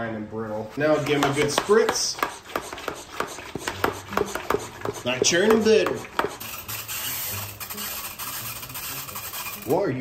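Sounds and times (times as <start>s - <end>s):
spray bottle spritzing: 3.5s - 9.7s.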